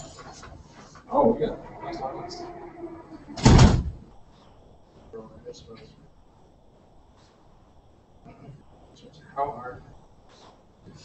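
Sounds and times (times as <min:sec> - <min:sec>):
loud thump: 0:03.4 - 0:04.0.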